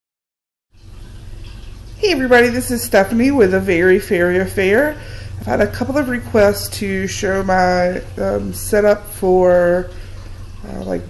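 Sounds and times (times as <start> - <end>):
room noise hiss and hum: 0.8 - 11.0.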